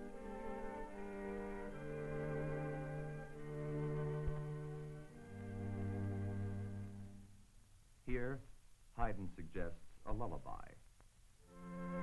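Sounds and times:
string quartet playing: 0:00.0 - 0:07.3, 0:11.5 - 0:12.0.

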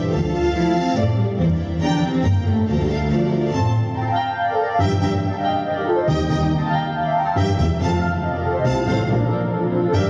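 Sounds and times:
orchestra playing sustained chords: 0:00.0 - 0:10.0.

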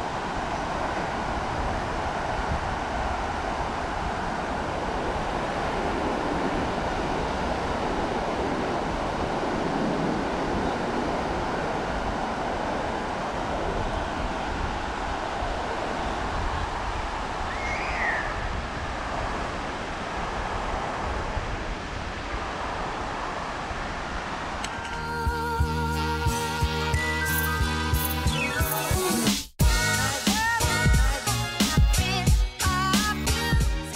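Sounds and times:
waves breaking on a beach: 0:00.0 - 0:25.0
wind buffeting microphone: 0:00.0 - 0:25.7.

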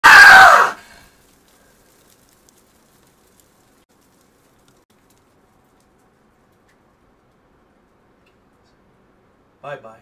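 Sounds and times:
man screaming: 0:00.0 - 0:00.8.

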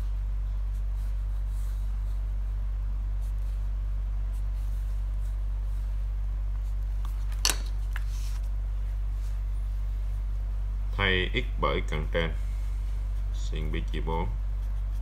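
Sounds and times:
steady low hum: 0:00.0 - 0:15.0
pen scratching on paper: 0:13.1 - 0:15.0.

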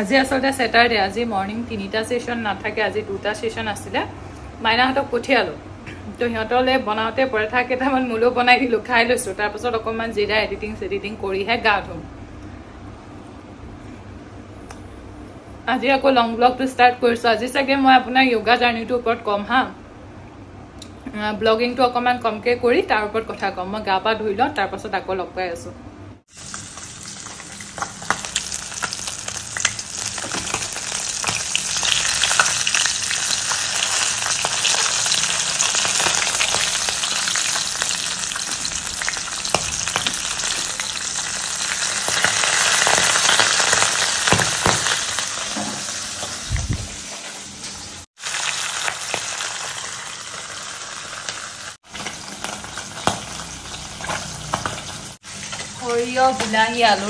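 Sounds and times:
fish sizzling in hot oil: 0:26.3 - 0:57.0.

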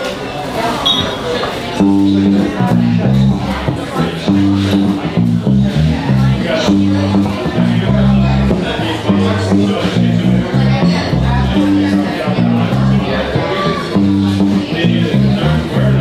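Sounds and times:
electric guitar riff: 0:01.8 - 0:16.0.

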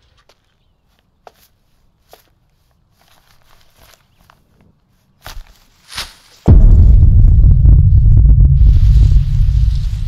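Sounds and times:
soft footsteps scuffing: 0:00.0 - 0:06.5.

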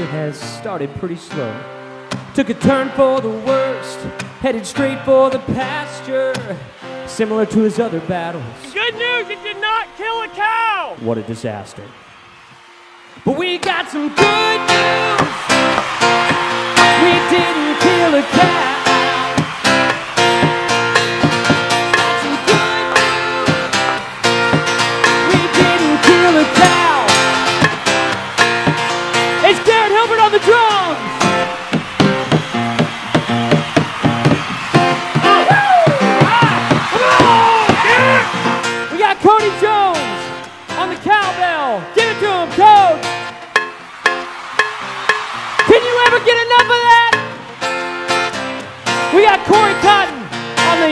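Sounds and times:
acoustic guitar strumming: 0:00.0 - 0:11.0, 0:12.7 - 0:50.9
percussion: 0:12.5 - 0:50.9.

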